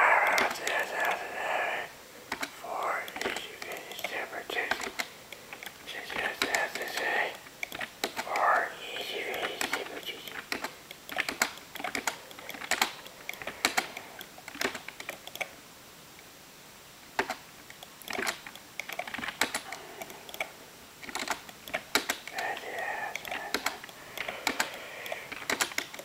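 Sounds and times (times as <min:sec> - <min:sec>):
faint voice talking: 0:00.0 - 0:01.9, 0:02.6 - 0:04.8, 0:05.9 - 0:07.4, 0:08.2 - 0:10.3, 0:22.3 - 0:23.7
computer keyboard typing: 0:00.2 - 0:01.6, 0:02.3 - 0:15.5, 0:17.2 - 0:26.0.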